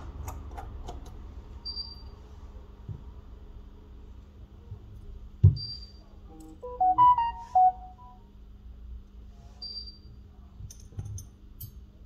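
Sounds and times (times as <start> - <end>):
electronic notification jingle: 6.6 - 8.2.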